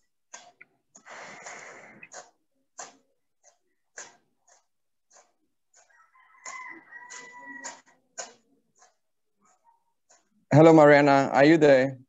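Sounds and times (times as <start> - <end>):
rooster crowing faintly: 5.8 - 8.4.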